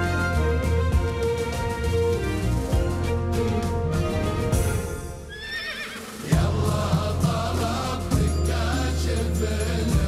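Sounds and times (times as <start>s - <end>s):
music: 0.0s - 10.0s
horse whinnying: 5.3s - 6.2s.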